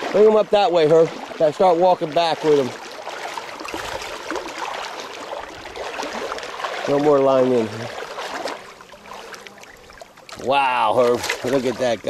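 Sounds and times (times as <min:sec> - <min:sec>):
water sloshing around wading legs: 0:00.0 - 0:12.0.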